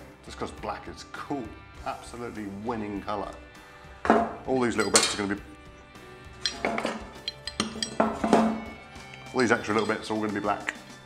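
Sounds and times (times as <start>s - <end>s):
background music: 0.0s - 11.0s
metal parts clinking: 4.8s - 5.3s, 6.4s - 10.9s.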